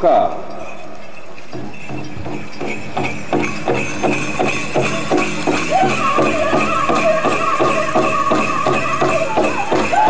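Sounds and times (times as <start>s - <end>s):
high ringing: 0.0s - 10.0s
big drum beating steadily: 1.5s - 10.0s.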